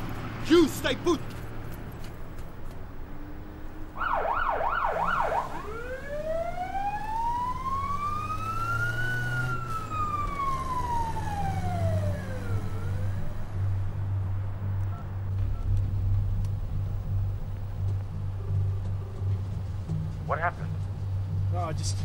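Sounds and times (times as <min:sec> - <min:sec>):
low vehicle rumble: 0:00.0 - 0:22.0
police siren yelping and wailing: 0:03.9 - 0:13.6.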